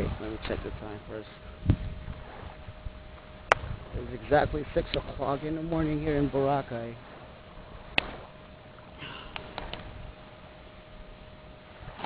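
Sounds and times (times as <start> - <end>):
faint steady hum: 0.0 - 12.0
low rumble and hiss: 0.0 - 12.0.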